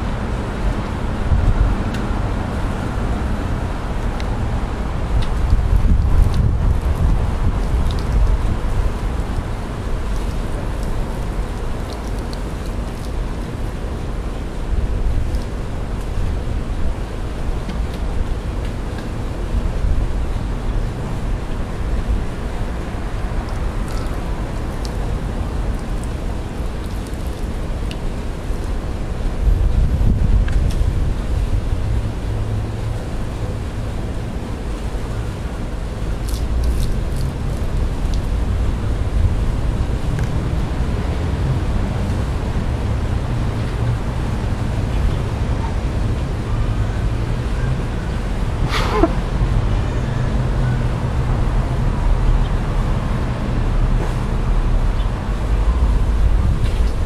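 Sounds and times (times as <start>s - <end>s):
wind buffeting microphone: 0.0s - 13.4s, 28.9s - 32.6s.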